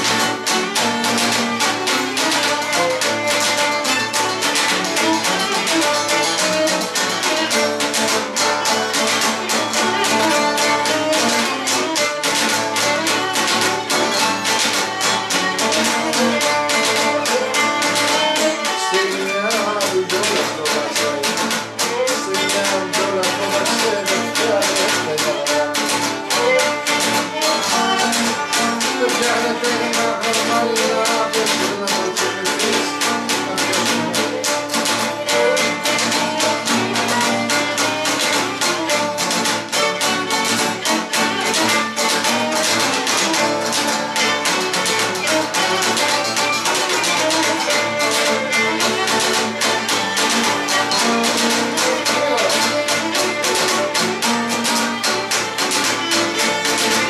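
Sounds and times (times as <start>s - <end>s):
bowed lyra fast melody: 0.0s - 57.0s
lute strummed rhythmically: 0.0s - 57.0s.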